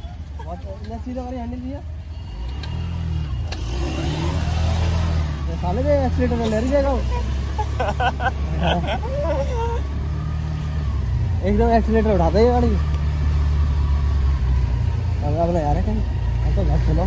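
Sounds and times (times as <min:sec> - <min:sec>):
motor scooter engine: 0:00.0 - 0:17.0
person speaking: 0:08.6 - 0:09.8.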